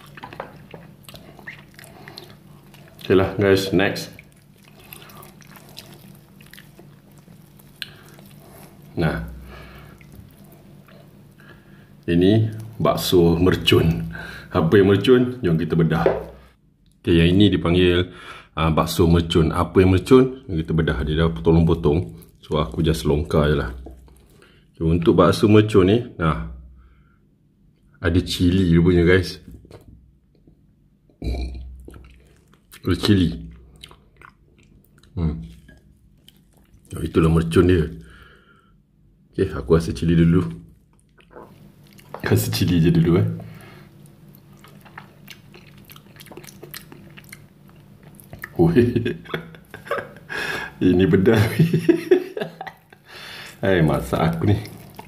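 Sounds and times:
wet squishing of meatball: 0:00.0 - 0:16.6, 0:20.4 - 0:25.1, 0:31.7 - 0:38.4, 0:40.1 - 0:51.4, 0:52.7 - 0:55.0
man burping: 0:31.2 - 0:31.7.

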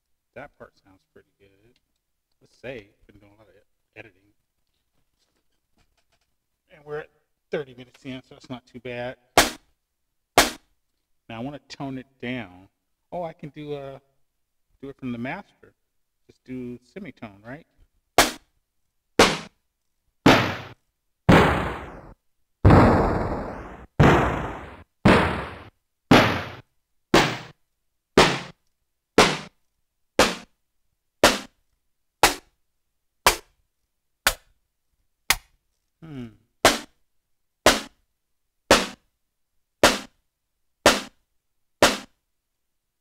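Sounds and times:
sampled drum hit: 0:22.7 - 0:26.6.

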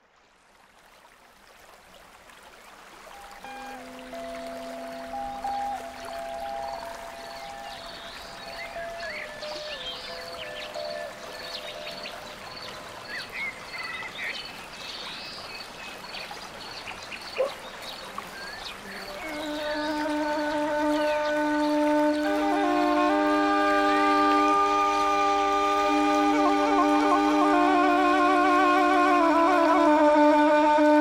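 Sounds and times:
running stream: 0:00.0 - 0:31.0
slow music of held notes: 0:03.1 - 0:13.0, 0:19.1 - 0:31.0.

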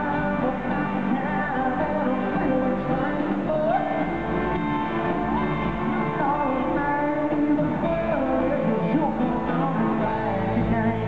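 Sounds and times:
live country-rock band: 0:00.0 - 0:11.0.

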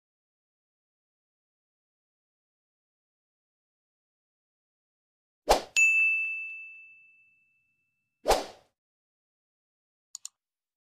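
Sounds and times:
bright chime ding: 0:05.8 - 0:07.7.

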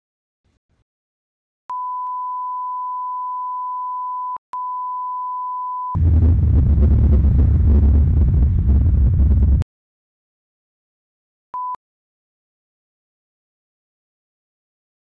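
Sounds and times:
rumbling static noise: 0:06.0 - 0:09.6.

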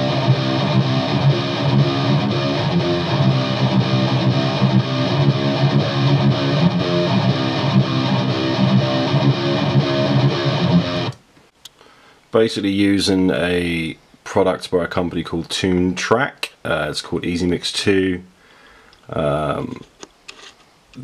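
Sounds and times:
distorted metal rhythm guitars: 0:00.0 - 0:11.2.

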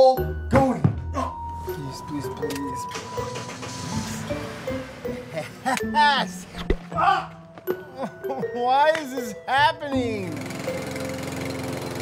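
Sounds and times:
lawn mower engine running: 0:02.8 - 0:05.4, 0:10.1 - 0:12.0.

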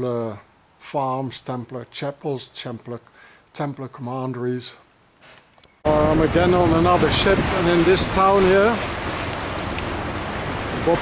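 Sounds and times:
water moving along hull: 0:05.9 - 0:11.0
wind on microphone: 0:05.9 - 0:11.0.

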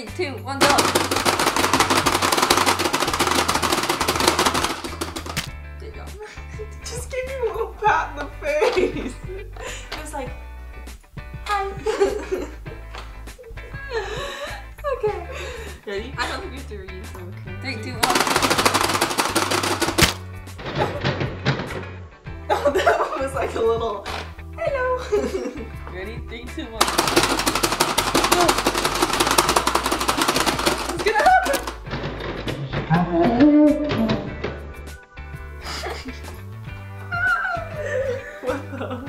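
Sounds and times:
background music: 0:00.0 - 0:39.0
plastic buttons clicking rapidly: 0:00.6 - 0:05.5, 0:18.0 - 0:20.2, 0:26.8 - 0:31.8.

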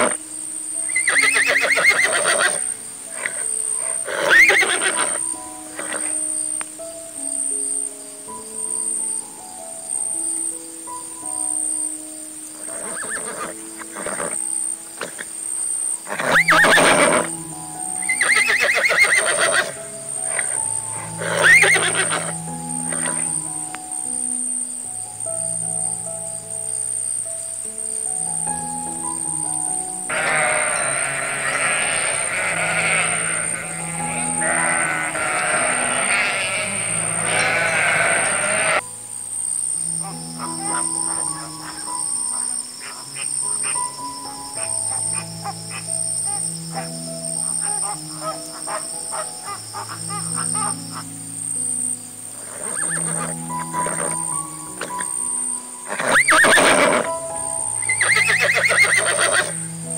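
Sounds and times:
calm background music: 0:00.0 - 0:59.9
horse whinnies: 0:00.9 - 0:06.2, 0:12.6 - 0:14.4, 0:16.0 - 0:17.4, 0:18.0 - 0:23.4, 0:30.1 - 0:38.8, 0:52.4 - 0:55.1, 0:55.9 - 0:57.2, 0:57.8 - 0:59.6
goat bleating: 0:30.1 - 0:38.8.

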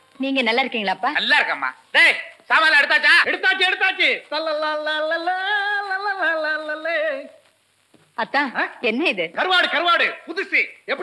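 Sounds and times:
man speaking: 0:01.1 - 0:04.6, 0:09.4 - 0:11.0.

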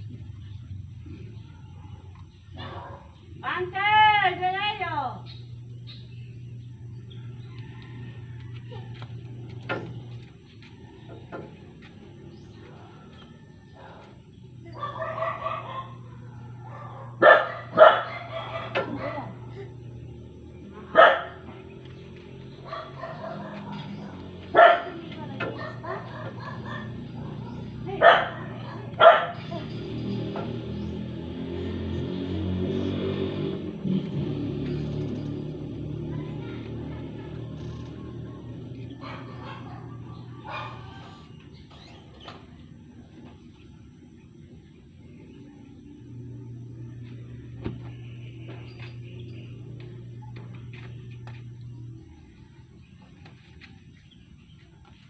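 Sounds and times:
dog barking: 0:02.6 - 0:03.2, 0:14.7 - 0:19.4, 0:20.9 - 0:21.4, 0:22.6 - 0:29.5, 0:39.0 - 0:41.1
rooster crowing: 0:07.1 - 0:09.4.

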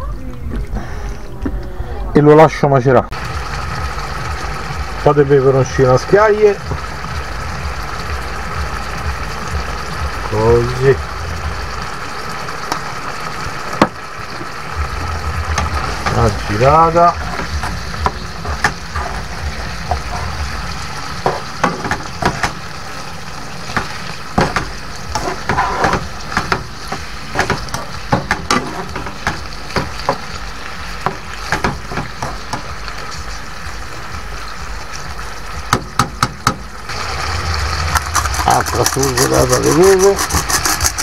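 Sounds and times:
low rumble: 0:00.0 - 0:05.8, 0:06.6 - 0:23.5, 0:36.7 - 0:38.8
fish sizzling in oil: 0:02.3 - 0:41.0.

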